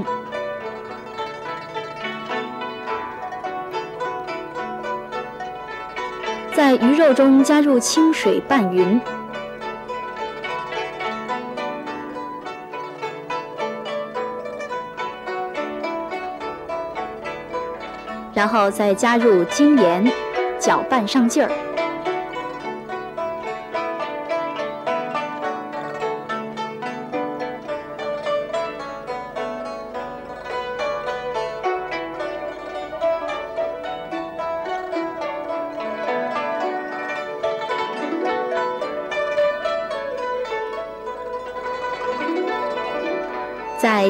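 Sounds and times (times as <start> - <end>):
plucked zither-like melody: 0.0 - 44.0.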